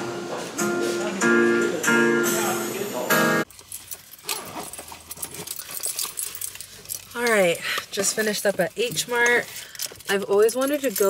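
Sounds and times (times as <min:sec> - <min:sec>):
keys jingling and clicking: 0:03.4 - 0:11.0.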